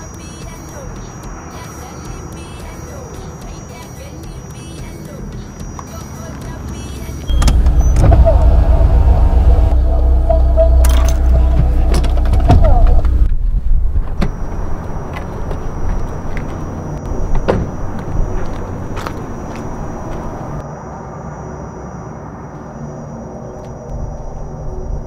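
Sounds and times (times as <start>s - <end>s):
car engine running: 4.4s - 20.6s.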